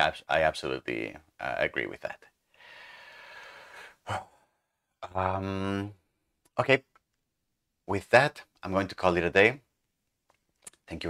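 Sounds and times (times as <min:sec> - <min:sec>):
short quick breath: 0:02.5 - 0:04.3
man sighing: 0:02.7 - 0:05.9.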